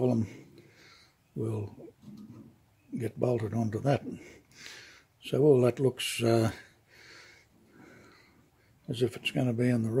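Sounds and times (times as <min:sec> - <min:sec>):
man talking: 0:00.0 - 0:00.4, 0:01.4 - 0:01.9, 0:02.9 - 0:04.4, 0:05.2 - 0:06.7, 0:08.9 - 0:10.0
soft breaths: 0:00.1 - 0:01.4, 0:04.0 - 0:05.2, 0:06.4 - 0:08.9.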